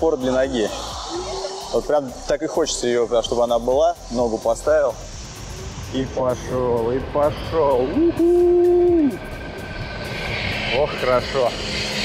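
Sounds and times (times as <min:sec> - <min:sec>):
faint steady whine: 0:00.0 - 0:12.0.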